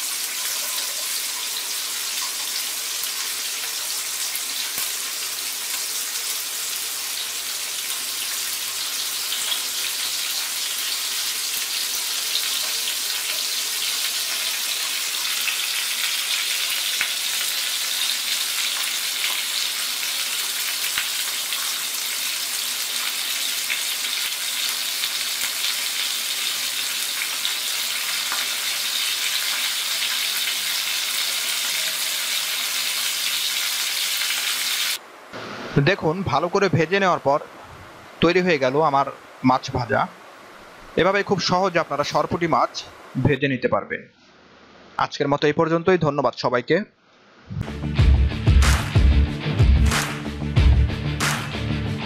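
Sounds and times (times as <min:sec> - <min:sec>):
fish sizzling in hot oil: 0:00.0 - 0:35.0.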